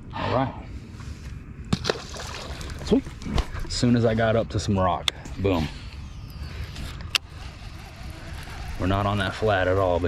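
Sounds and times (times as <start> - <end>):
fishing reel spool whirring: 6.0 - 10.0.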